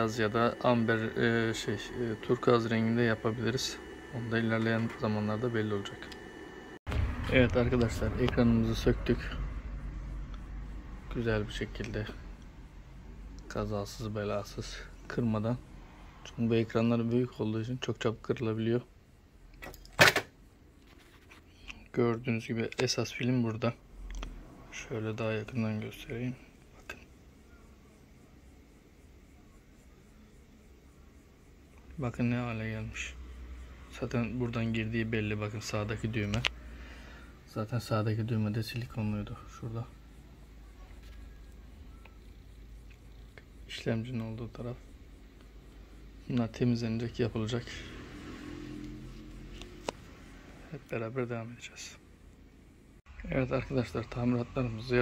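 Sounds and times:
loud noise burst: 0:00.0 - 0:13.2
mechanical hum with pitched tones: 0:00.0 - 0:55.0.

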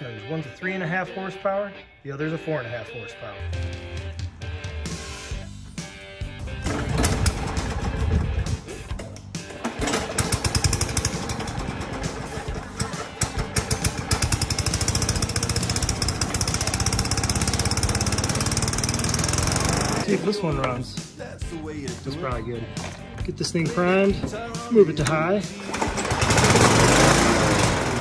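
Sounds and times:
background music: 0:00.0 - 0:28.0
lawn mower engine running: 0:06.4 - 0:20.8, 0:22.7 - 0:28.0.

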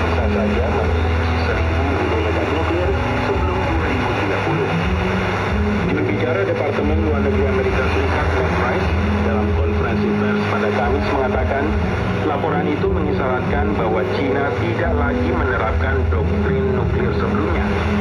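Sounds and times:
low music notes: 0:00.0 - 0:18.0
radio news broadcast: 0:00.0 - 0:18.0
radio static and hiss: 0:00.0 - 0:18.0.

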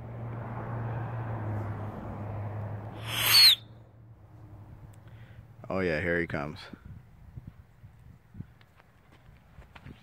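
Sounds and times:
man hissing call with whistle: 0:03.0 - 0:03.6.

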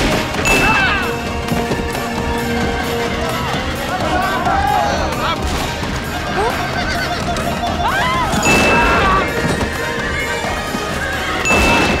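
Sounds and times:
hooves pounding: 0:00.0 - 0:12.0
orchestral film score: 0:00.0 - 0:12.0
people shouting: 0:00.0 - 0:12.0
horses whinnying: 0:00.4 - 0:12.0.

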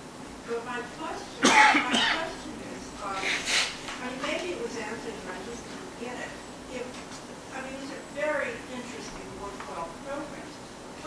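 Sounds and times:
person coughing loudly: 0:01.4 - 0:02.4.

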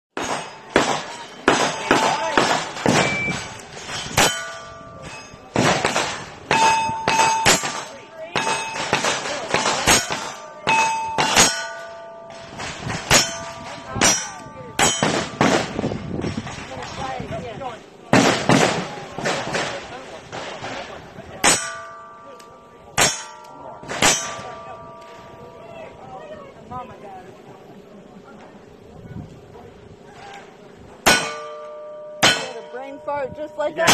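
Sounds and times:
gunshots: 0:00.2 - 0:03.6, 0:05.6 - 0:11.6, 0:14.8 - 0:15.9, 0:18.1 - 0:21.7
steel target clanging: 0:00.2 - 0:17.0, 0:21.4 - 0:25.7, 0:31.0 - 0:33.9.

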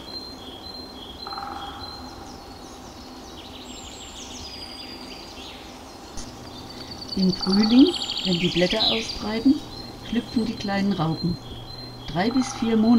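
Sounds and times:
low background noise: 0:00.0 - 0:12.9
songbirds chirping and trilling: 0:00.0 - 0:12.9.

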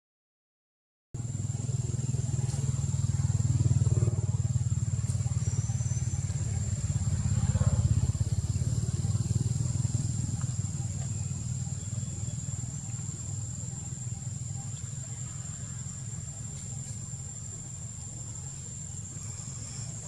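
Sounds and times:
steady low rumble: 0:01.2 - 0:20.0.

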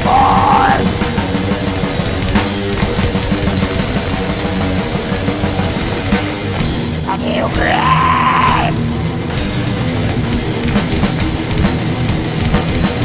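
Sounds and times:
bass guitar: 0:00.0 - 0:13.0
distorted electric guitars: 0:00.0 - 0:13.0
drums: 0:00.0 - 0:13.0.

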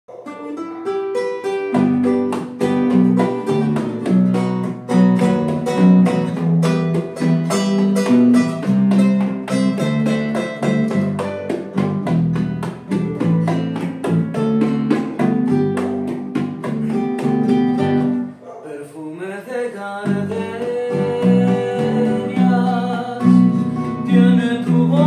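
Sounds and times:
classical guitars playing: 0:00.1 - 0:18.4, 0:20.0 - 0:25.0
electric bass guitar: 0:01.7 - 0:18.4, 0:20.1 - 0:25.0.

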